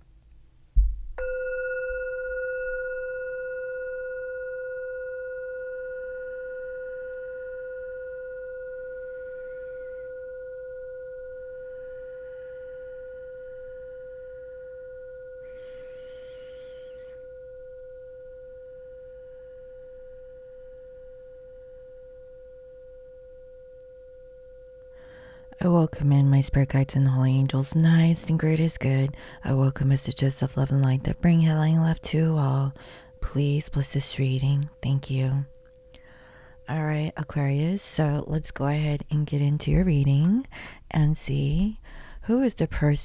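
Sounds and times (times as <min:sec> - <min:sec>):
singing bowl ringing: 0:01.2 - 0:39.0.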